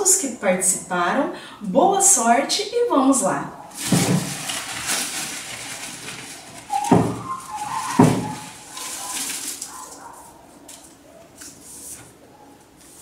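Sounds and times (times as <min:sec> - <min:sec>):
paper slips rustling: 0:03.7 - 0:12.0
sharp knocks: 0:06.8 - 0:08.5.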